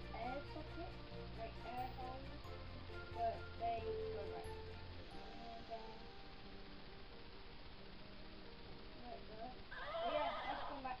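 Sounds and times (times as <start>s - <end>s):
quiet background music: 0.0s - 11.0s
horse whinny: 9.7s - 10.8s.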